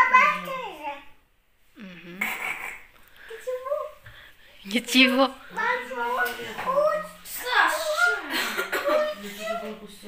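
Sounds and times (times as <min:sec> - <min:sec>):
young child's voice: 0:00.0 - 0:01.2, 0:03.2 - 0:04.2, 0:05.5 - 0:09.9.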